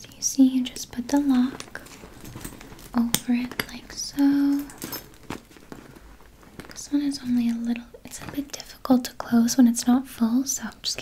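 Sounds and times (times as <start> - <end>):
leather handbag rustling: 0.1 - 8.8.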